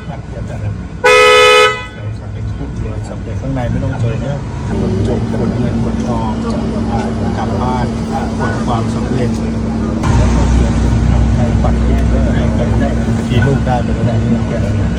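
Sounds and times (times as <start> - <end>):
people talking: 0.0 - 0.8, 1.8 - 14.9
car hum: 0.0 - 14.9
low rumble: 4.5 - 14.9.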